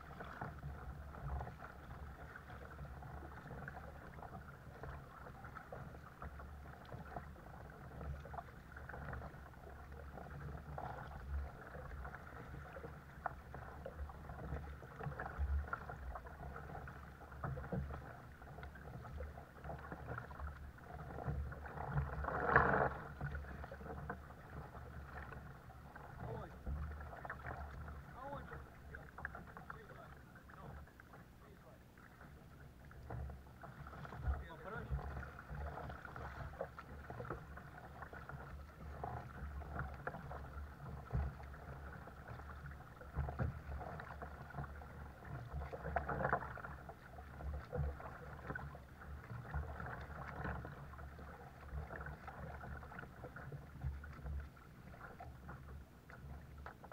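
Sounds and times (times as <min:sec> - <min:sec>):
paddle strokes in water: 0:00.0 - 0:56.9
water lapping at kayak hull: 0:00.0 - 0:56.9.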